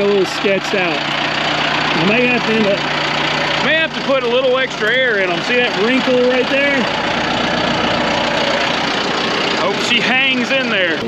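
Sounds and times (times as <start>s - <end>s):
tractor diesel engine idling: 0.0s - 11.0s.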